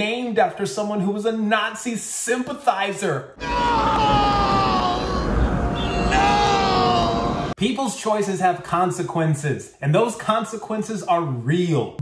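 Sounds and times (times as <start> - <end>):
man screaming: 3.4 - 7.6
low rumble: 3.6 - 7.6.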